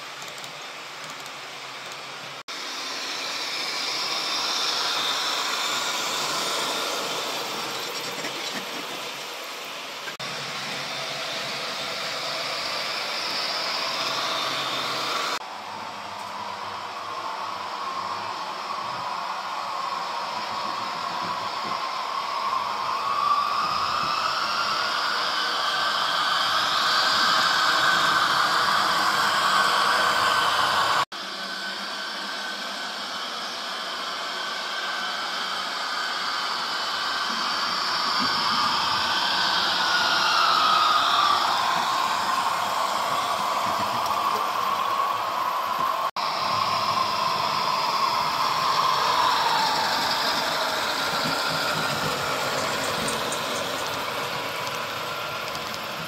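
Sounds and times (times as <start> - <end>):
model trains running: 0.0 - 56.0.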